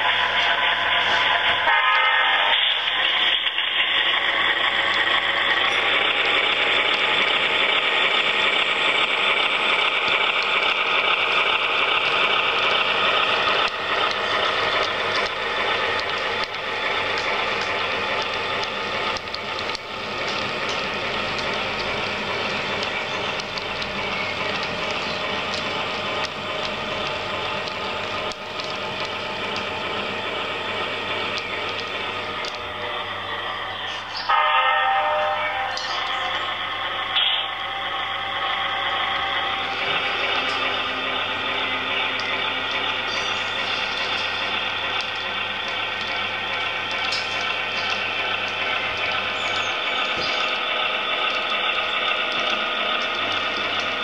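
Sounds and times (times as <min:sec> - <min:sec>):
wheels rattling over rails: 0:00.0 - 0:01.7, 0:02.7 - 0:34.4, 0:35.5 - 0:54.0
model train motor whirring: 0:00.0 - 0:34.4, 0:35.1 - 0:54.0.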